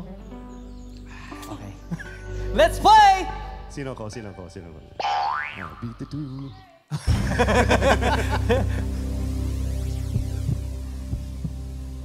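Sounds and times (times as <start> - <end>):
suspense music low drone: 7.1 - 12.0.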